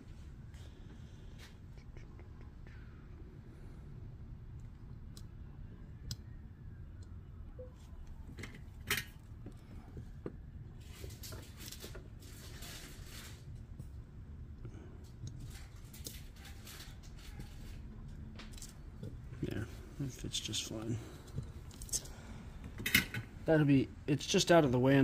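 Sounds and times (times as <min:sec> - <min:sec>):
low steady hum: 0:00.0 - 0:25.0
handling clicks and scratches: 0:15.1 - 0:19.2.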